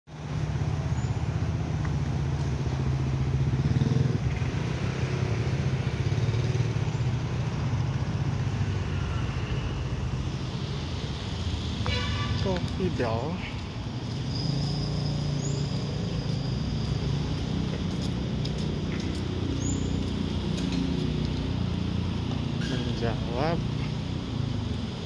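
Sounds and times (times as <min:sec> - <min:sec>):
motorcycle and car engines rumbling: 0:00.1 - 0:25.0.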